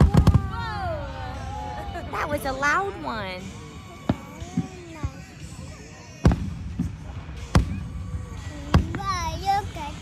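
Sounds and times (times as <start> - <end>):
fireworks bursting bangs: 0.0 - 1.5, 4.0 - 5.4, 6.1 - 9.7.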